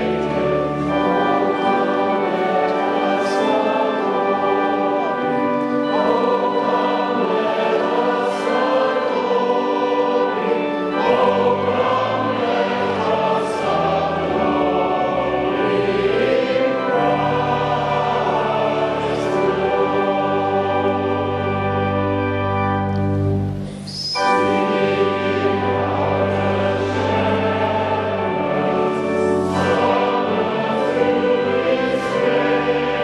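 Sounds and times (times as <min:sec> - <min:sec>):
choir singing a hymn: 0:00.0 - 0:33.0
organ: 0:00.0 - 0:33.0.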